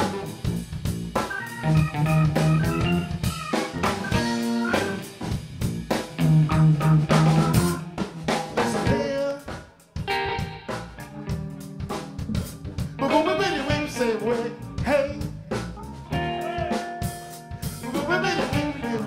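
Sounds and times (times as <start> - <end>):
drum kit snare and rimshots: 0.0 - 19.0
electric bass: 0.0 - 19.0
electric guitar: 0.0 - 19.0
keyboard: 0.0 - 19.0.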